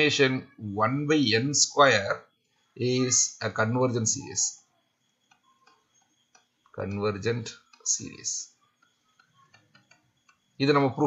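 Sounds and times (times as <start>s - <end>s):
person speaking: 0.0s - 4.7s, 6.8s - 8.6s
stylus tapping on tablet: 5.2s - 7.0s, 8.6s - 10.6s.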